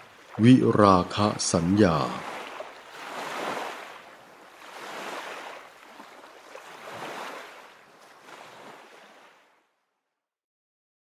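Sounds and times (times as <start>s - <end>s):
sea waves washing in: 0.0s - 9.6s.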